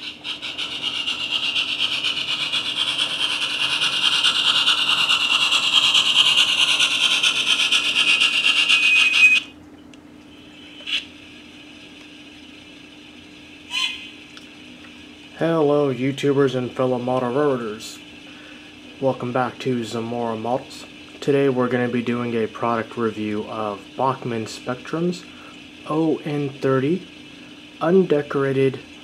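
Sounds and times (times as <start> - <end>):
model train running on track: 0.2 - 9.4.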